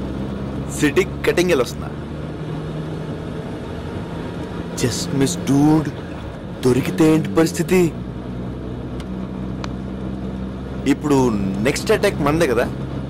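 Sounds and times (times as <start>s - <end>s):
car engine drone: 0.0s - 13.0s
road noise: 0.0s - 13.0s
man speaking: 0.7s - 2.0s, 4.8s - 6.0s, 6.6s - 8.0s, 10.8s - 12.7s.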